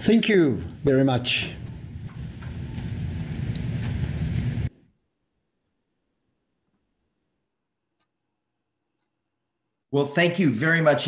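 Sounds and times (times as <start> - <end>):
hiss: 0.0 - 4.7
low rumbling background noise: 0.0 - 4.7.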